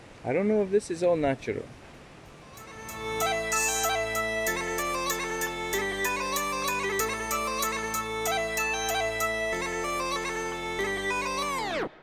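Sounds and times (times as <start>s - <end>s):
bagpipe music with drone: 2.5s - 12.0s
tape-stop effect: 2.5s - 12.0s.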